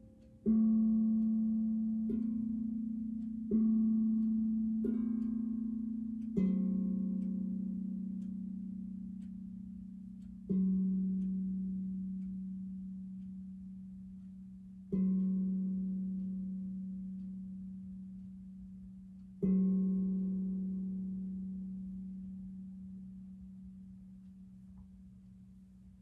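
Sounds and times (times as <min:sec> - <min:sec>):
low metal tone struck with mallet: 0:00.0 - 0:26.0.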